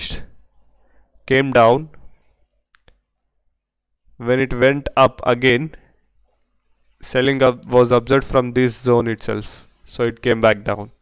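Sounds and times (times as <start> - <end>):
faint mouse clicks: 2.4 - 3.0.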